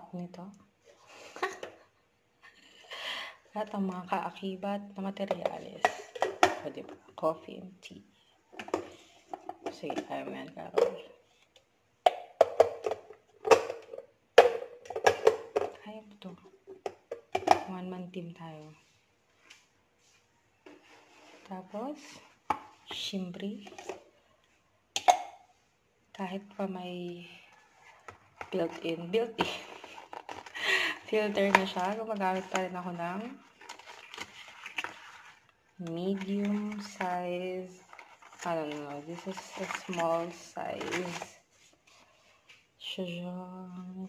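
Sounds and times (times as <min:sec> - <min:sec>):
person speaking: 0:30.6 - 0:33.4, 0:35.8 - 0:41.3.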